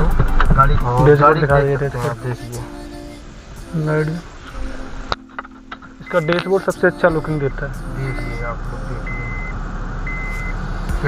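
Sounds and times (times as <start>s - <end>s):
idling engine hum: 0.0s - 11.0s
car warning chime beeping: 4.2s - 10.7s.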